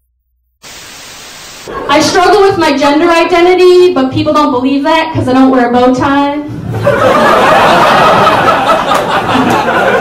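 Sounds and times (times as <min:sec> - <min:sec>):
recording hiss: 0:00.6 - 0:02.2.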